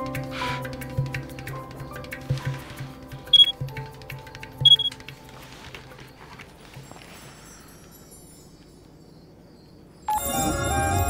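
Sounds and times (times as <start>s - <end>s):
soft background music: 0.0s - 11.0s
mobile phone beeps: 3.3s - 3.5s, 4.7s - 4.9s.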